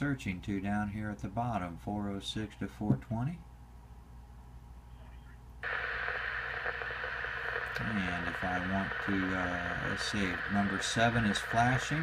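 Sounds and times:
harsh noisy radio scanner signal: 0:05.0 - 0:12.0.

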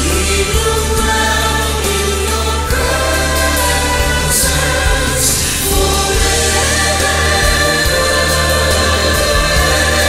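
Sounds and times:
instrumental accompaniment: 0:00.0 - 0:10.0
voices singing together: 0:00.0 - 0:10.0.

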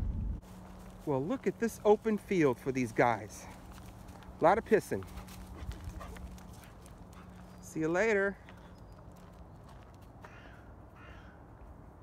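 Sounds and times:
footsteps crunching on frosted gravel: 0:00.1 - 0:10.6.

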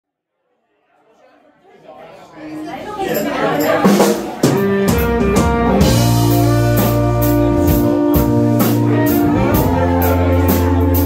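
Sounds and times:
people chattering: 0:00.4 - 0:11.0.

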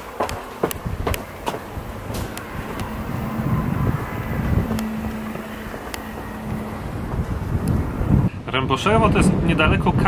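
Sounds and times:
footfalls on steel grating stairs: 0:00.0 - 0:03.1
wind buffeting microphone: 0:00.0 - 0:10.0
steady low hum: 0:00.3 - 0:08.4.

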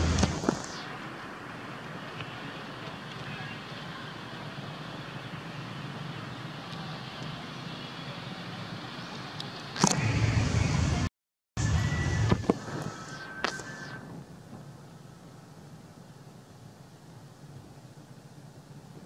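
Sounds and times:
loud rushing noise with rumble: 0:00.0 - 0:02.8, 0:09.8 - 0:14.5
outdoor background hiss: 0:00.0 - 0:19.0.

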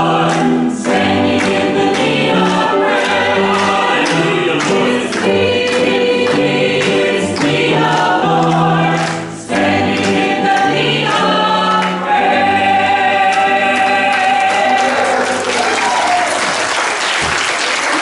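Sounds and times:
choir singing: 0:00.0 - 0:16.4
people applauding: 0:00.2 - 0:10.7, 0:13.3 - 0:18.0.

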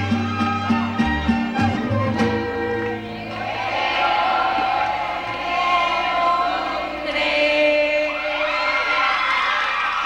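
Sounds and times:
audience cheering and shouting: 0:00.0 - 0:10.0.

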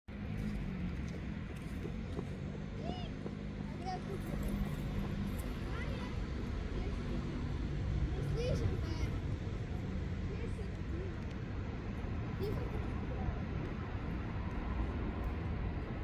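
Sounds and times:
distant city traffic rumble: 0:00.1 - 0:16.0.

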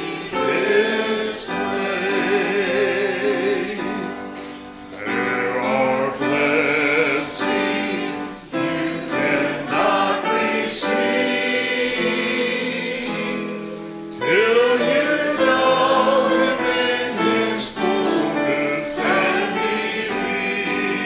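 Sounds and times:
congregation singing a hymn: 0:00.0 - 0:21.0.

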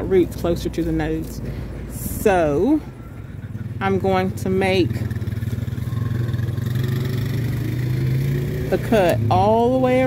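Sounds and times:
motor engine droning: 0:01.6 - 0:10.0.

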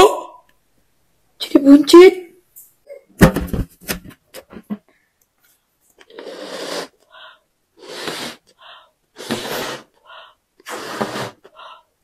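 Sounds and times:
person blowing up a balloon: 0:06.0 - 0:07.0, 0:07.8 - 0:08.6, 0:09.2 - 0:10.0, 0:10.6 - 0:11.8.

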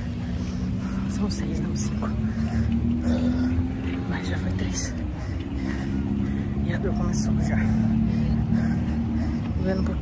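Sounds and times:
runner breathing hard: 0:00.0 - 0:10.0
steady low hum: 0:00.0 - 0:10.0.

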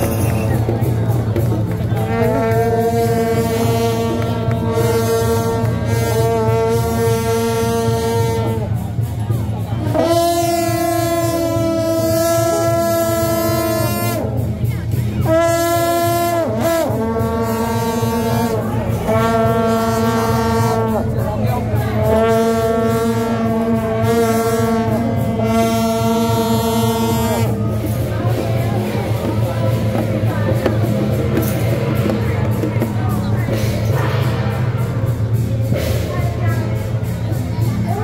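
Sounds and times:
reed horn long held notes: 0:00.0 - 0:38.0.

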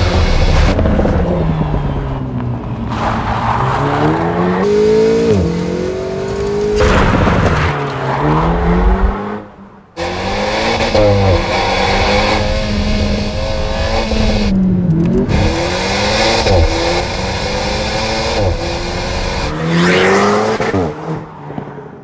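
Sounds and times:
car engine revving: 0:00.0 - 0:21.4.

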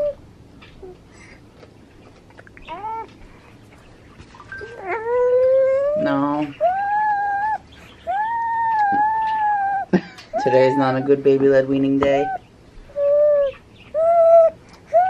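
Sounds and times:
baby crying and wailing: 0:02.7 - 0:03.1, 0:04.6 - 0:11.2, 0:13.0 - 0:15.0.

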